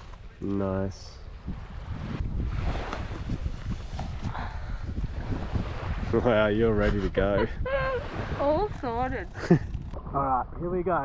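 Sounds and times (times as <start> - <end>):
wind buffeting microphone: 0.8 - 11.0.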